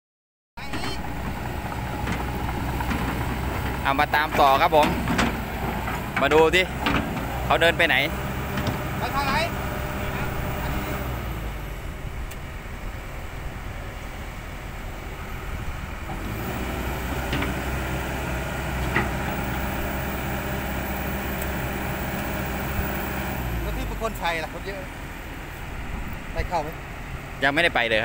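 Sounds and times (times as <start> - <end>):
excavator diesel engine running: 0.6 - 28.0.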